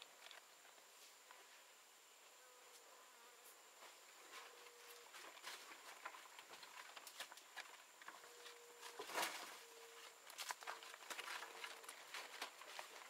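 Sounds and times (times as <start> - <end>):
insect buzz: 0.0 - 13.0.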